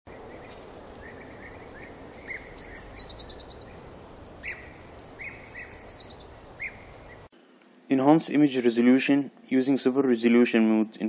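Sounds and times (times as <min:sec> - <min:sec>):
birds chirping and singing: 0:00.1 - 0:07.3
outdoor background noise: 0:00.1 - 0:11.0.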